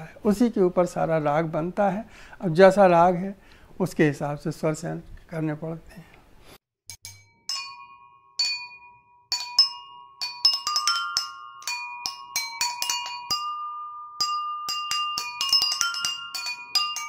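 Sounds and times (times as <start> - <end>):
water-filled bowls struck ringing: 7.0 - 17.0.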